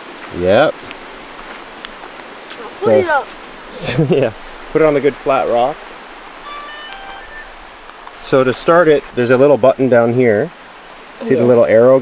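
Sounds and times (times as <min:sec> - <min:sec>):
river water rushing: 0:00.0 - 0:12.0
faint brief high tones: 0:06.4 - 0:08.9.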